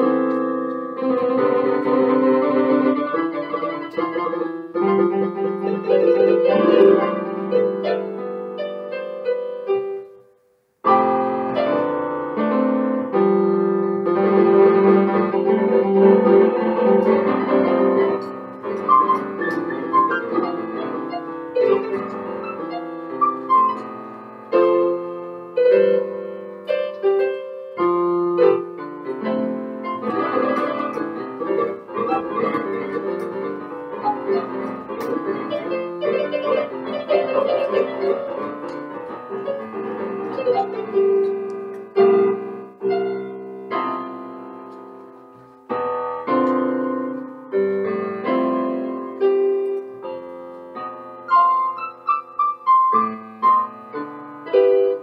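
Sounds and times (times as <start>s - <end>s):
electric piano chords and melody: 0.0s - 55.0s.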